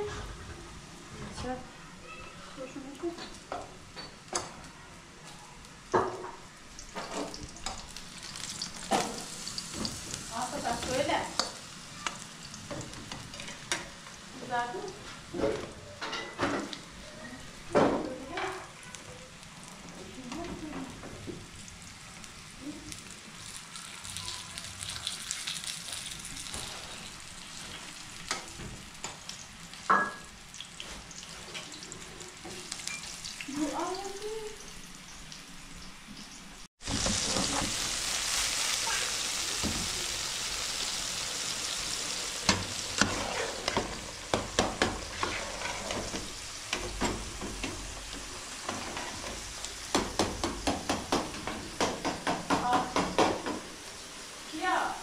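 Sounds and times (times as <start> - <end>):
food sizzling in oil: 0.0 - 55.0
utensil scraping a pan: 42.7 - 47.7.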